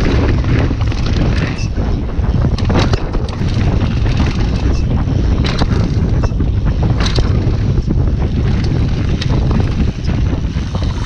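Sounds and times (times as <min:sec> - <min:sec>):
bike clicks and rattles: 0:00.0 - 0:11.0
wind buffeting microphone: 0:00.0 - 0:11.0.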